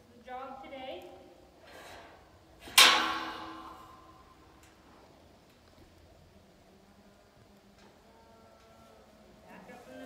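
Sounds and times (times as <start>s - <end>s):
metal gate clanging shut: 1.7s - 4.3s.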